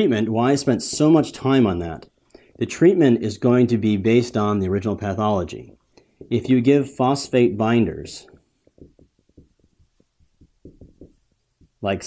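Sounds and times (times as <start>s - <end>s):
marker tapping on whiteboard: 0.2s - 4.4s, 5.6s - 11.9s.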